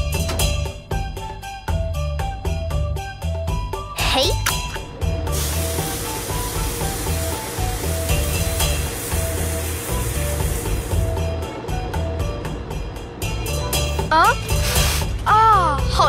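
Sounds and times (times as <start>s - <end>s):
background music: 0.0s - 16.0s
steam hissing: 5.2s - 11.2s, 14.5s - 15.2s.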